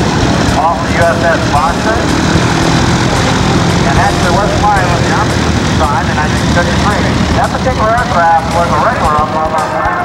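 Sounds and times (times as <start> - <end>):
propeller plane engine droning: 0.0 - 10.0.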